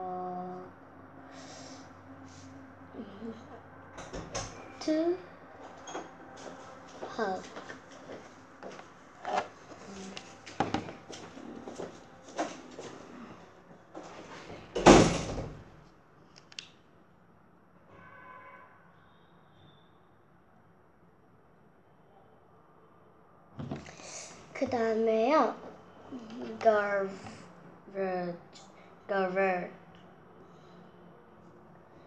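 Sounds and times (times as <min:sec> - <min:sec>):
child speaking quietly: 0:02.9 - 0:03.5, 0:26.1 - 0:29.7.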